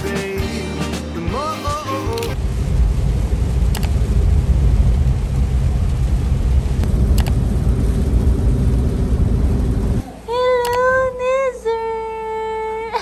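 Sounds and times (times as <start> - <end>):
vehicle rumble from inside cabin: 2.4 - 11.6
faint clicks: 3.8 - 4.0, 7.1 - 7.4, 10.6 - 10.9.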